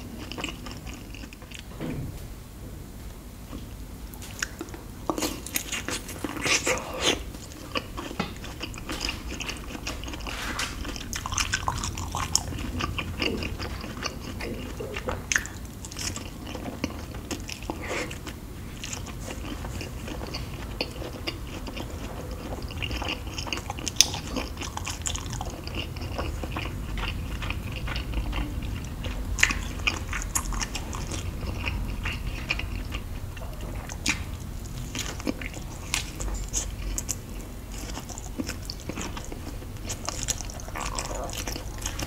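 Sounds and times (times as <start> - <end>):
chewing soft food: 0.0 - 1.7, 3.5 - 42.0.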